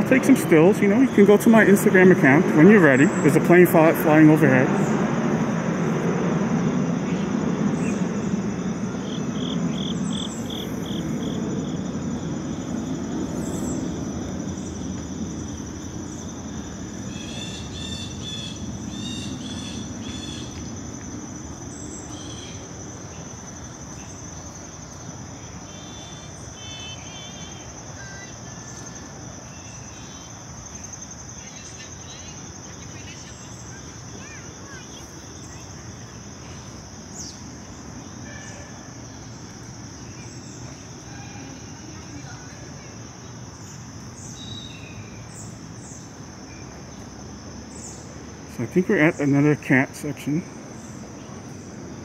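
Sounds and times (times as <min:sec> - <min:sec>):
airplane passing overhead: 0:00.0 - 0:52.0
high-pitched insect trill: 0:00.0 - 0:52.0.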